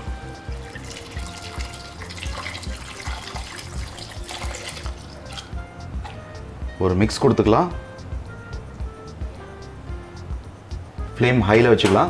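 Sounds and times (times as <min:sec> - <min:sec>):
background music with beat: 0:00.0 - 0:12.0
liquid pouring into a pan: 0:00.5 - 0:05.6.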